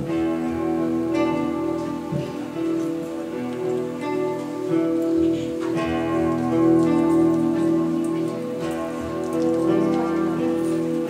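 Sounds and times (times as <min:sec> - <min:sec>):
slow electric guitar music: 0:00.0 - 0:11.0.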